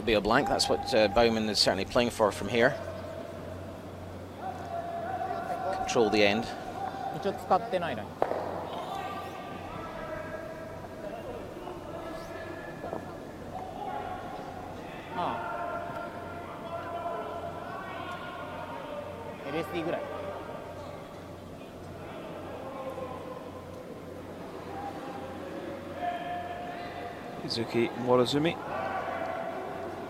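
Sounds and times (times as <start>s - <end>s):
voices calling and talking: 0.0s - 30.0s.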